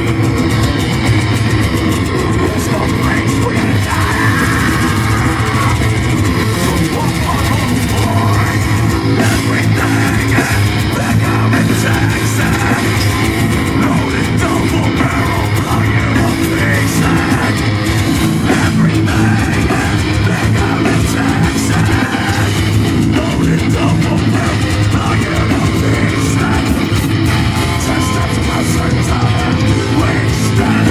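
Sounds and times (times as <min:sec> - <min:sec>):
live heavy metal band: 0:00.0 - 0:30.9.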